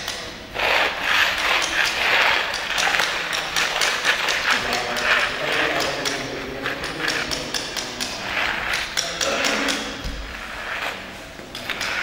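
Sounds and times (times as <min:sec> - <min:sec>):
sponge dabbing on concrete: 0:00.0 - 0:12.0.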